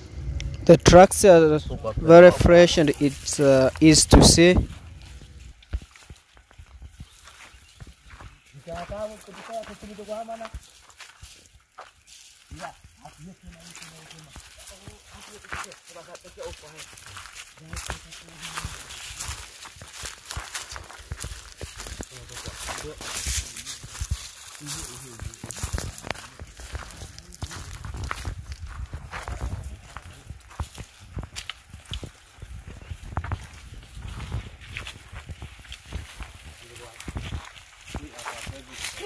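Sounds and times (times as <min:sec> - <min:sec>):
footsteps in dry bush: 0:00.0 - 0:39.0.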